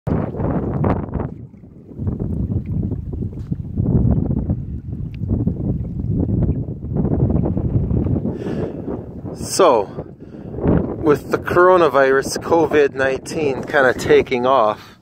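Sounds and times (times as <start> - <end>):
wind buffeting microphone: 0.1 - 15.0.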